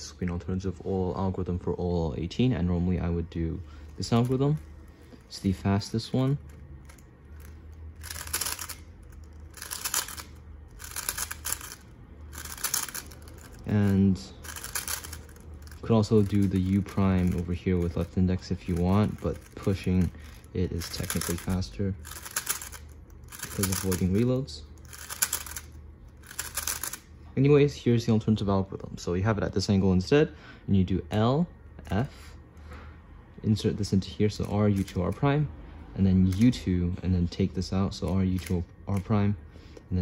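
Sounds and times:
speed cube clicking: 6.1s - 27.0s.

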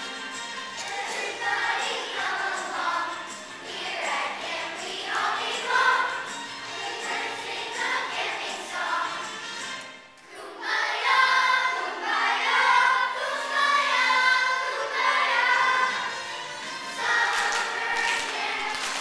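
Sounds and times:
children's choir singing: 0.0s - 19.0s.

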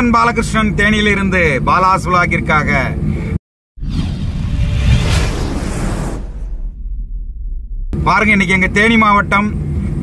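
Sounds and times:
whoosh: 3.8s - 8.0s
low throbbing rumble: 3.8s - 8.6s.

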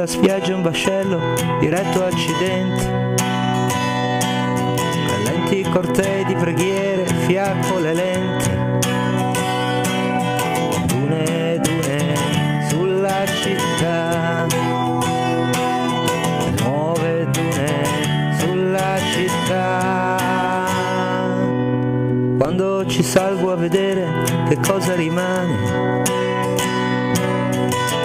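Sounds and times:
person singing: 0.0s - 21.8s, 22.4s - 28.0s
guitar playing: 0.0s - 28.0s.

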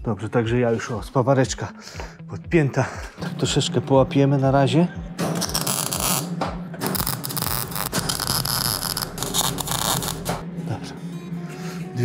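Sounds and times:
welding arc crackling: 5.4s - 6.3s, 6.9s - 10.4s.

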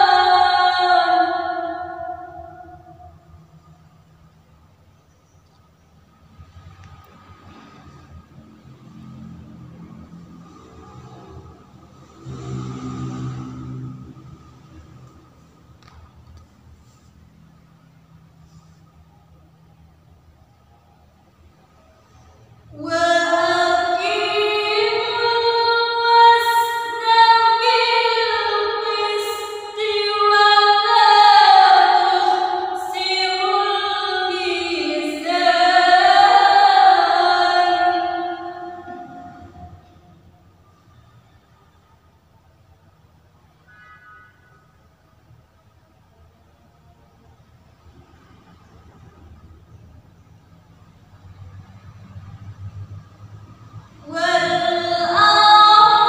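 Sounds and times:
woman's melodic recitation: 0.0s - 3.0s, 22.8s - 39.7s, 54.0s - 56.0s
vehicle engine hum: 0.0s - 42.8s, 45.6s - 56.0s
faint high whine: 0.0s - 52.2s.

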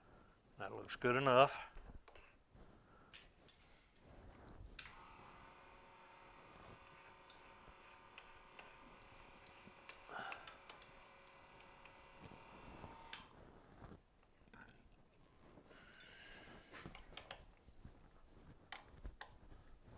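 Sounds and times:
small electric motor humming: 4.8s - 13.3s.

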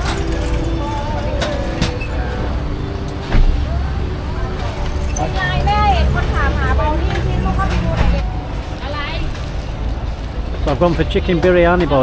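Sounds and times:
background voices: 0.0s - 8.8s
road traffic rumble: 0.0s - 12.0s.

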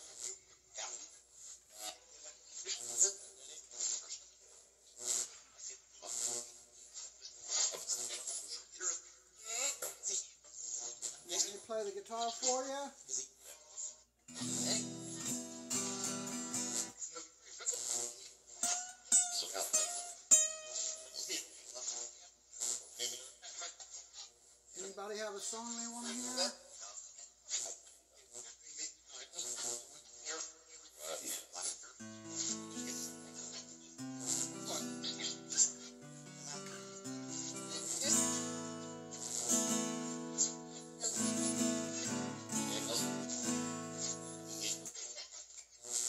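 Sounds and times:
choppy voice-like bursts and hiss: 14.3s - 16.9s, 24.8s - 26.6s, 28.5s - 45.2s
sharp plucked note: 14.3s - 16.9s, 18.6s - 21.2s, 32.0s - 44.9s
strummed guitar chord: 14.3s - 17.0s, 18.6s - 21.3s, 32.0s - 44.9s.

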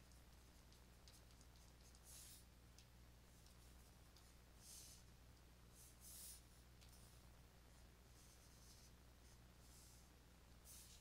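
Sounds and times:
stylus scratching on tablet: 0.0s - 2.6s, 3.3s - 11.0s
low electrical hum: 0.0s - 11.0s.

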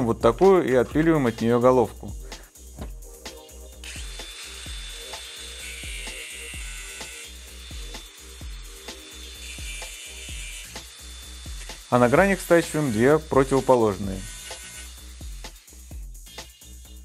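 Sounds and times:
background music with low beat: 0.0s - 17.0s
angle grinder cutting steel: 3.8s - 16.7s.

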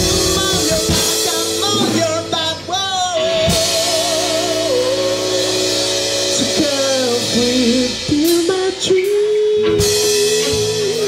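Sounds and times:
man singing a long vibrato note: 0.0s - 11.0s
rock band playing live: 0.0s - 11.0s.

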